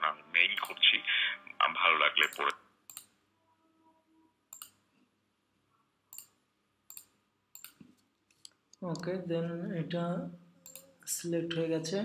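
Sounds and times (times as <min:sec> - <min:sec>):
computer mouse clicking: 0:02.2 - 0:03.2, 0:04.5 - 0:04.8, 0:06.1 - 0:09.0, 0:10.6 - 0:10.9.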